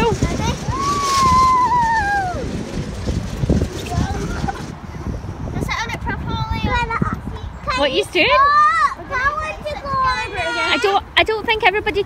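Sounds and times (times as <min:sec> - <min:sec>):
child squealing with glee: 0:00.7 - 0:02.5.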